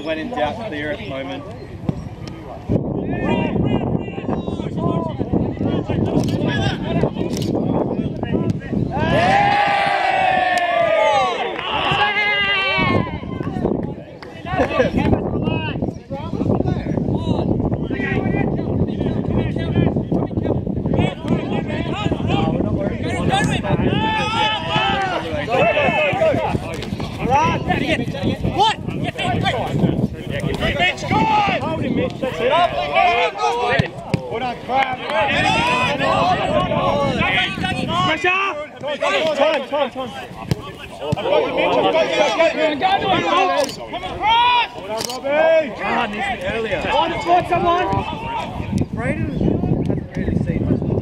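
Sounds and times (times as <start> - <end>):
voices shouting and talking: 0.0 - 51.0
men shouting long calls: 23.1 - 26.5.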